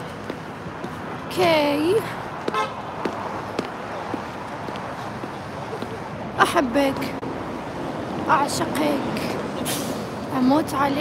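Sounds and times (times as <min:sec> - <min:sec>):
footsteps walking: 0:00.0 - 0:01.2, 0:02.3 - 0:06.0
city street traffic: 0:00.0 - 0:11.0
car horn toot: 0:02.5 - 0:02.8.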